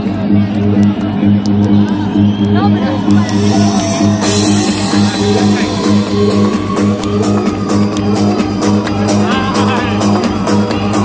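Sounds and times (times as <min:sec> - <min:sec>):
loud techno music: 0:00.0 - 0:11.0.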